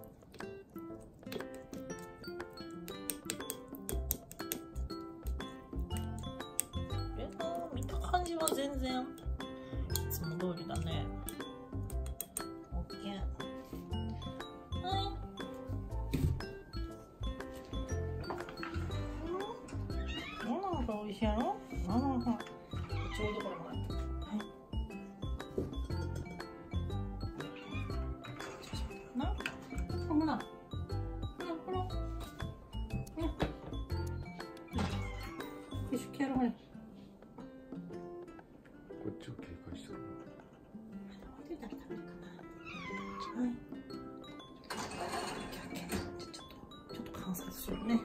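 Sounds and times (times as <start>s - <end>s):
background music: 0.0s - 48.0s
cat meowing: 19.9s - 20.7s, 22.8s - 23.8s, 27.3s - 28.3s, 34.7s - 35.8s, 42.5s - 43.6s.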